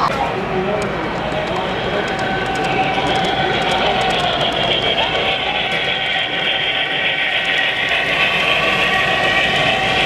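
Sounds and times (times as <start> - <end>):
model train hum: 0.2 - 10.0.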